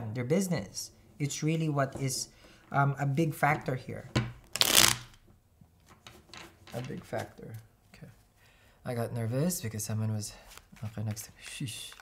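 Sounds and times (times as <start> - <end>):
cards riffling: 4.5 - 5.2.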